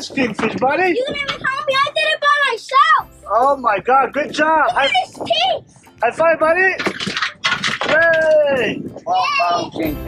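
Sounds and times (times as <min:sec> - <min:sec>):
excited high-pitched voices exclaiming: 0:09.0 - 0:09.9.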